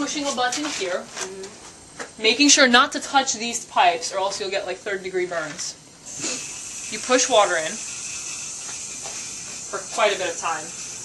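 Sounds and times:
water hissing through fill valve: 6.0s - 11.0s.

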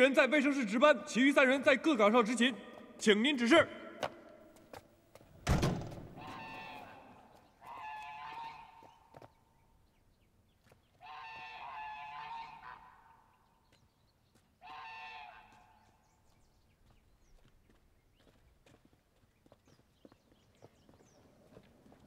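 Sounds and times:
thump: 5.4s - 6.2s
geese honking: 6.2s - 9.1s, 11.0s - 13.4s, 14.6s - 16.0s.

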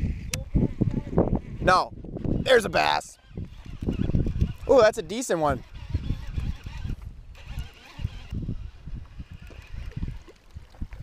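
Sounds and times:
wind thumping on microphone: 0.0s - 11.0s
fishing reel cranking: 2.4s - 10.6s
microphone handling noise: 3.3s - 4.7s.

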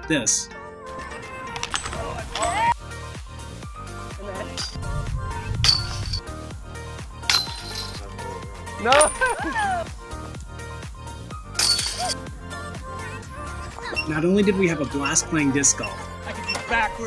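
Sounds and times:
discs hitting metal chains: 1.0s - 2.7s, 4.5s - 4.8s, 5.6s - 6.3s, 7.3s - 8.2s, 8.8s - 9.6s, 11.6s - 12.2s.

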